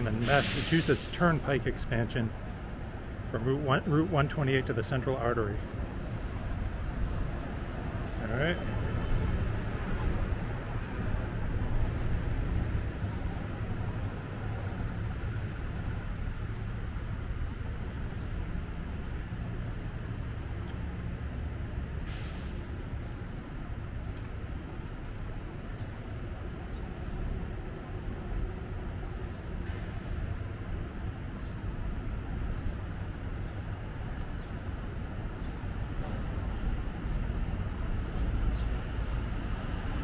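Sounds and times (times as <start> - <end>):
traffic rumble: 0.0 - 40.0
short hiss: 0.2 - 1.1, 22.1 - 22.6.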